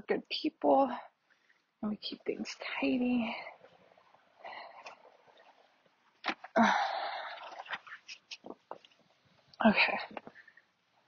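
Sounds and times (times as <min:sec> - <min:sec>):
fabric rustling: 0:07.3 - 0:09.5.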